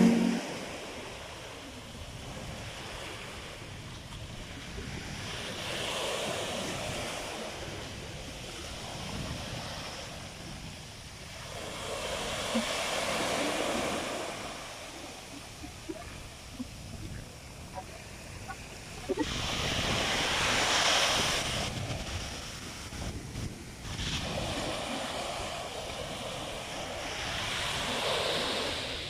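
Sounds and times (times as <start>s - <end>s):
small waves breaking on beach: 0.0s - 29.0s
wind rumble on microphone: 0.0s - 29.0s.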